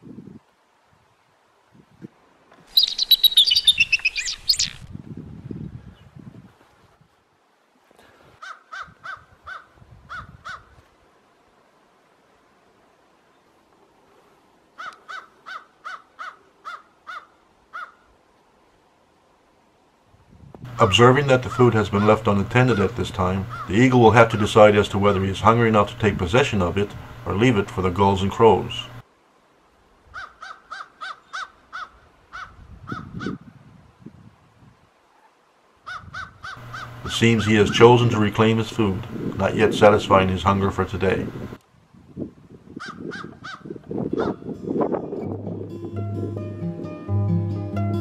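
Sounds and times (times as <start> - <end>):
crow cawing: 8.4 - 10.7, 14.8 - 18.1, 21.5 - 23.7, 30.2 - 33.4, 35.8 - 37.0, 42.8 - 43.7.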